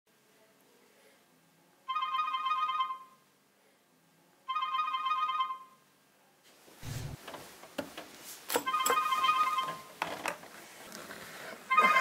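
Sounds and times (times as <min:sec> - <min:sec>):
smartphone ringtone: 0:01.8 - 0:03.2, 0:04.4 - 0:05.8, 0:08.6 - 0:10.0, 0:11.7 - 0:12.0.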